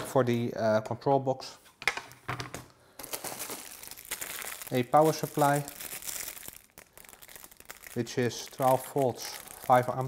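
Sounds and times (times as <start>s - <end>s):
plastic bag crinkling: 3.0s - 10.0s.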